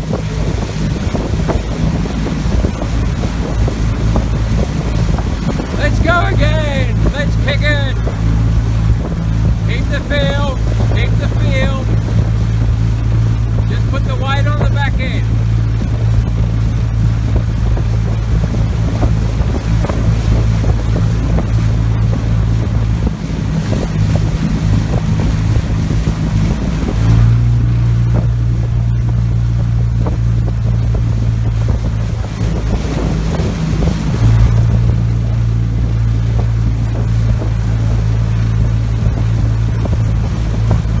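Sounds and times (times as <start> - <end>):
outboard motor droning: 0.0 - 41.0.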